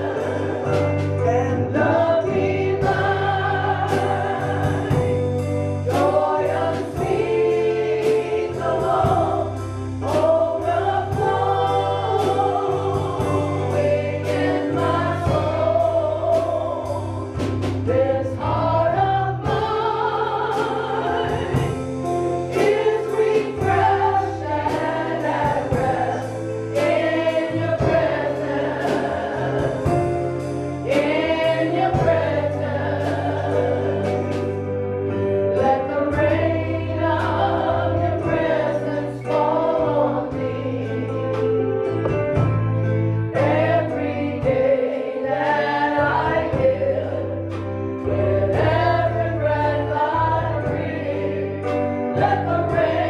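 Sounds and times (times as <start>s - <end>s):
voices singing: 0.0s - 34.7s, 35.5s - 42.4s, 43.3s - 53.0s
drum kit and cymbal hits: 0.0s - 53.0s
electronic keyboard: 0.0s - 53.0s.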